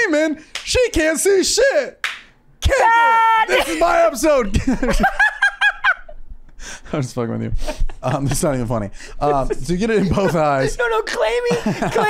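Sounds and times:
man laughing hard: 2.6 - 6.2, 9.2 - 12.0.

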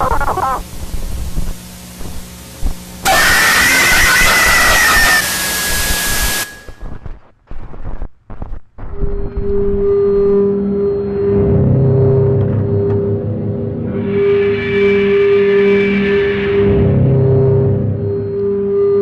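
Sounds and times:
harsh static burst: 0.0 - 9.3
low hum: 0.0 - 19.0
high held tone: 3.0 - 6.8
steady low drone: 9.1 - 19.0.

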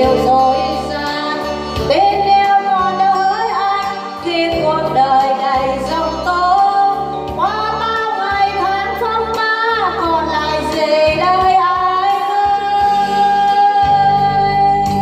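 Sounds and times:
woman singing a ballad: 0.0 - 15.0.

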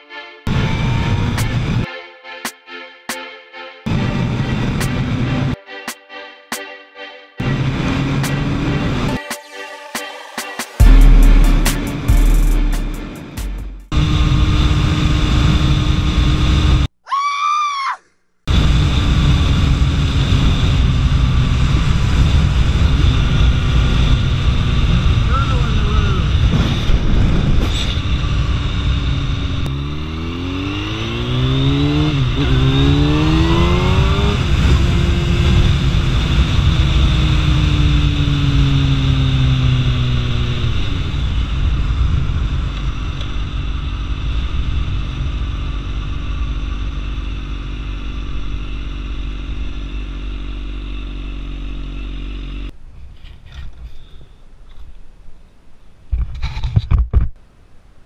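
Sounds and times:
heavy wind noise: 18.5 - 29.7
motorcycle engine revving: 18.5 - 52.7.

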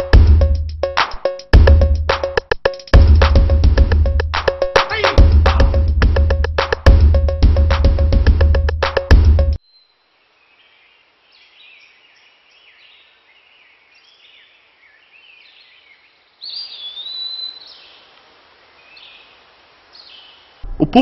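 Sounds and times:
music with strong beat: 0.0 - 9.6
background hiss: 9.6 - 21.0
birds chirping and calling: 14.0 - 18.1.

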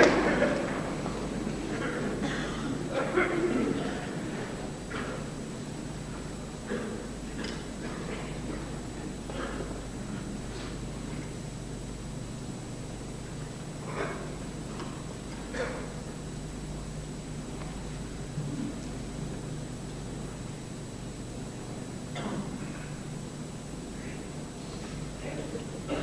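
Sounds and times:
low recording hum: 0.0 - 26.0.

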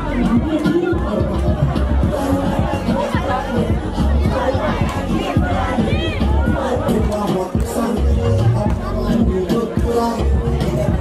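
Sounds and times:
crowd shouting and cheering: 0.0 - 11.0
loud music with thudding bass: 0.0 - 11.0.

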